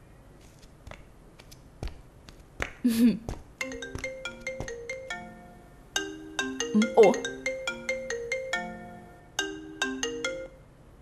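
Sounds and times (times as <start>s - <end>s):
smartphone ringtone: 3.6s - 10.6s.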